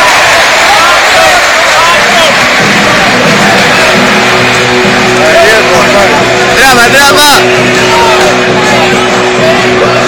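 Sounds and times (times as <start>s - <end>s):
crowd noise and voices: 0.0s - 10.0s
music over public address: 0.0s - 10.0s.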